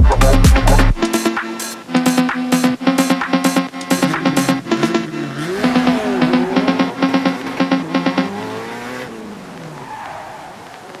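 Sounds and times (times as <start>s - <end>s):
phonk beat: 0.0s - 8.8s
car engine revving: 1.9s - 11.0s.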